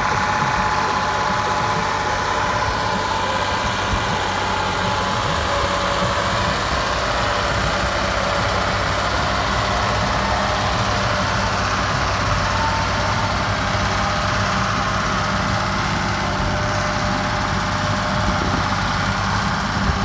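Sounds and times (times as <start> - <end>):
tractor diesel engine under load: 0.0 - 20.0.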